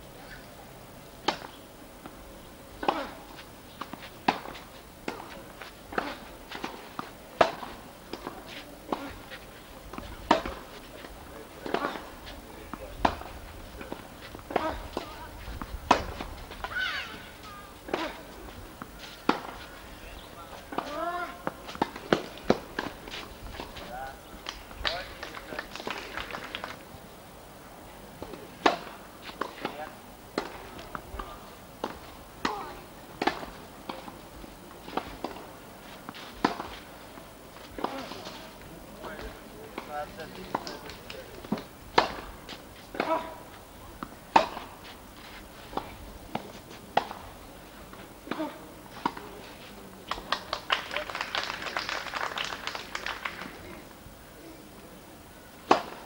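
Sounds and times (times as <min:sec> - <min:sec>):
tennis balls struck by rackets: 0:01.2 - 0:02.2, 0:02.8 - 0:26.2, 0:28.2 - 0:34.2, 0:34.8 - 0:36.9, 0:37.6 - 0:38.4, 0:39.0 - 0:45.0, 0:45.7 - 0:47.4, 0:55.6 - 0:56.0
faint voices: 0:01.9 - 0:55.7.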